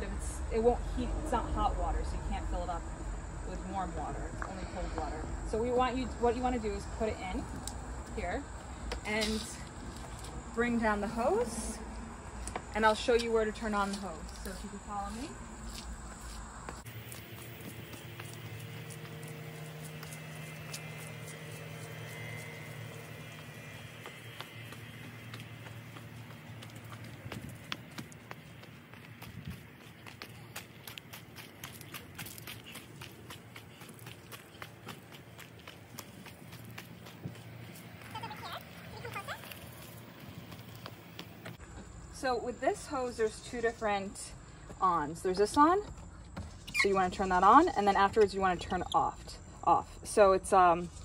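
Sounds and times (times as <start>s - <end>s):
footsteps crunching on gravel: 7.4s - 41.8s.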